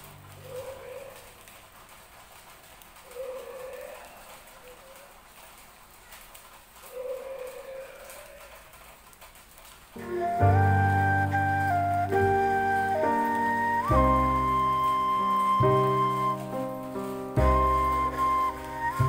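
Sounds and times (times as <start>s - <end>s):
faint outdoor hiss: 0.0s - 19.0s.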